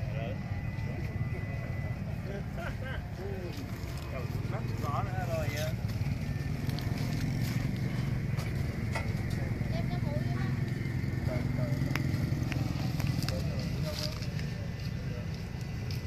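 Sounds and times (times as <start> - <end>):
distant people talking: 0.0 - 16.0
steady low hum: 0.0 - 16.0.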